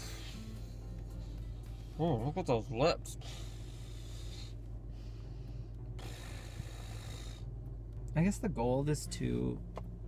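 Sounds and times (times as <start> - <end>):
low hum inside a car: 0.0 - 10.0
man breathing out through nose: 3.2 - 7.6.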